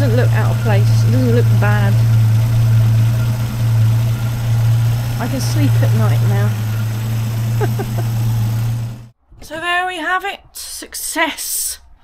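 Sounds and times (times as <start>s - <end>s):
car engine idling: 0.0s - 9.1s.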